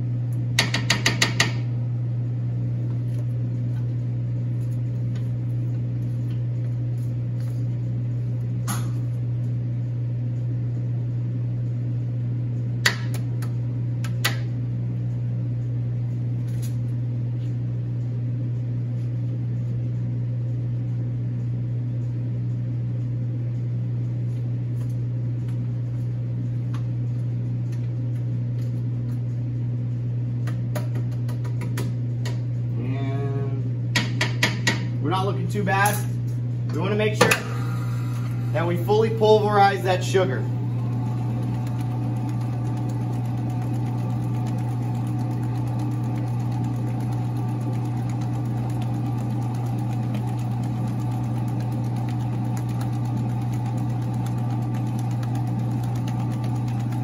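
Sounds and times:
low hum of kitchen motor: 0:00.0 - 0:57.0
person speaking: 0:38.5 - 0:40.6.

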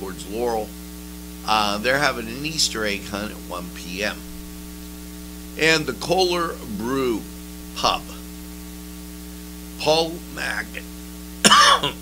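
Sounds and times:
electrical mains hum: 0:00.0 - 0:12.0
faint hiss: 0:00.0 - 0:12.0
man speaking: 0:01.5 - 0:04.3, 0:05.6 - 0:08.2, 0:09.8 - 0:10.8.

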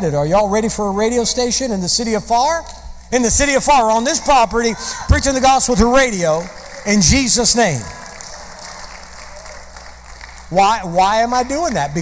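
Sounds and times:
congregation applauding: 0:04.8 - 0:12.0.

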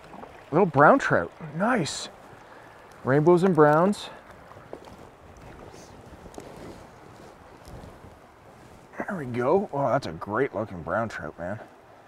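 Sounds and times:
stream flowing over rocks: 0:00.0 - 0:12.0.

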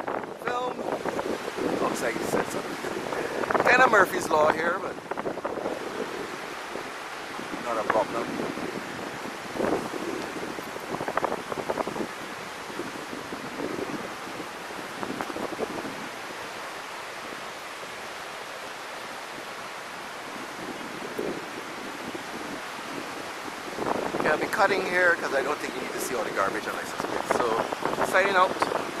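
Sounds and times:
surf: 0:00.0 - 0:29.0
wind: 0:00.0 - 0:29.0
wind buffeting microphone: 0:00.0 - 0:29.0.

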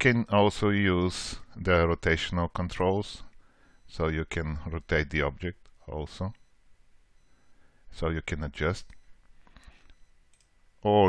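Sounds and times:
computer mouse clicks: 0:09.6 - 0:10.6.

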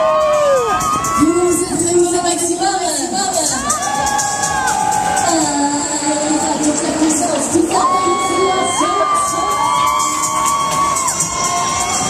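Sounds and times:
fairground crowd noise: 0:00.0 - 0:12.0.

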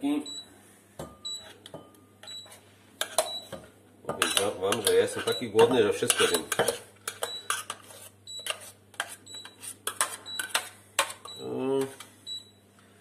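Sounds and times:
metal spoon scraping saucepan: 0:04.1 - 0:10.7.

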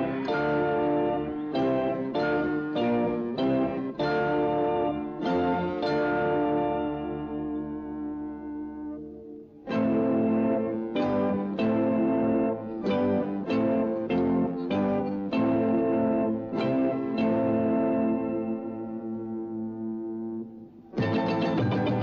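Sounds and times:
band music: 0:00.0 - 0:20.2, 0:21.0 - 0:22.0.

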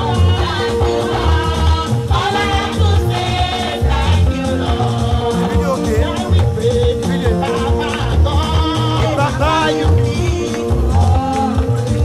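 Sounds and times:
women singing gospel: 0:00.0 - 0:05.7
band with heavy bass: 0:00.0 - 0:12.0.

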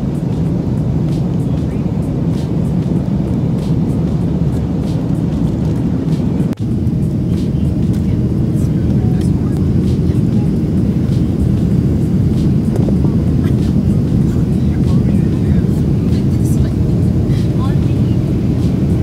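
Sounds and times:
airliner cabin engine drone: 0:00.0 - 0:19.0.

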